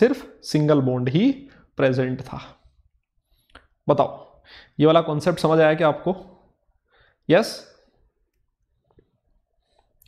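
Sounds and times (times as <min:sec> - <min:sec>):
man speaking: 0:00.0 - 0:02.7, 0:03.8 - 0:06.5, 0:07.3 - 0:07.9.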